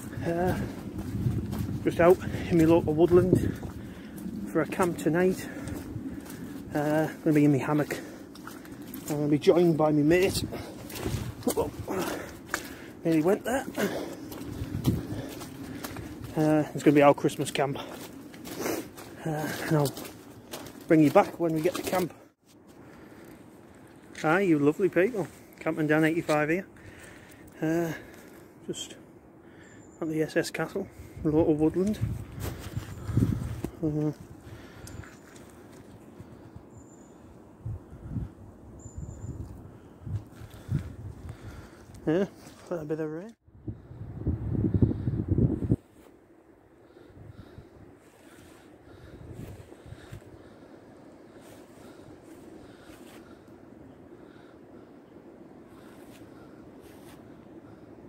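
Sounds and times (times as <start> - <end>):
footsteps on soft ground: 0.0 - 28.4, 30.8 - 36.7, 39.4 - 43.2, 47.4 - 53.5, 55.8 - 57.8.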